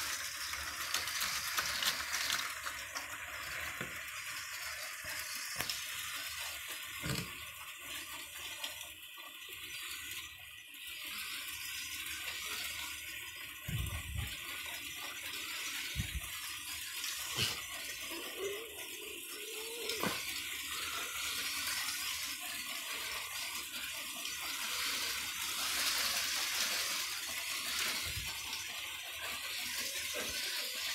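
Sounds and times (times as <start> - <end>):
toy trains whirring on plastic track: 0.0 - 30.9.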